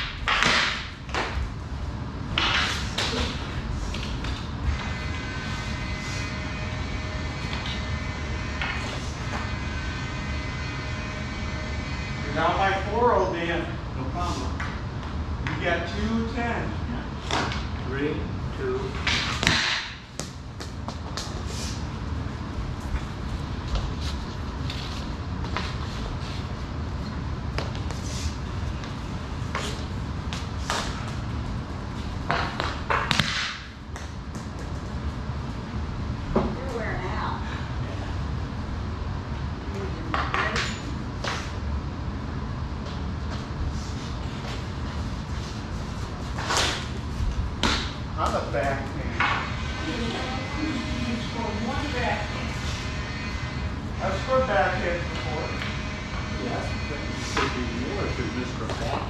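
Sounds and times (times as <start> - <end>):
hockey sticks striking ball: 0.0 - 1.4, 32.3 - 34.5.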